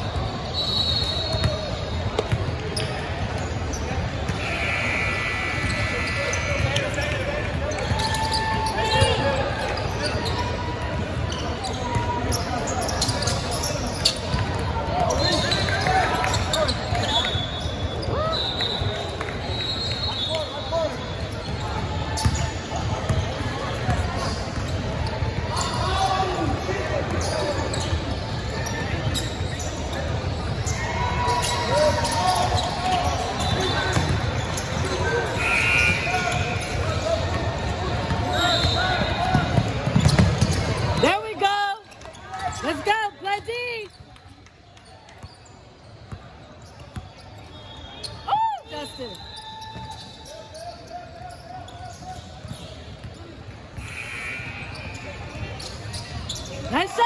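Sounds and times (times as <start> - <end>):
sneakers squeaking: 0.0 - 57.0.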